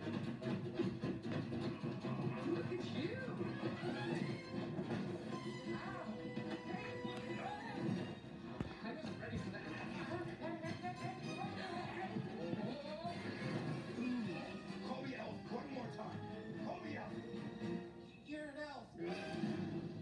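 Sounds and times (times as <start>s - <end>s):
film music from television: 0.0s - 20.0s.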